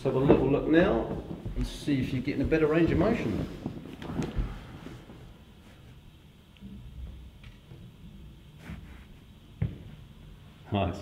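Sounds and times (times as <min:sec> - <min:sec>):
faint shuffling movement: 0:00.0 - 0:06.2.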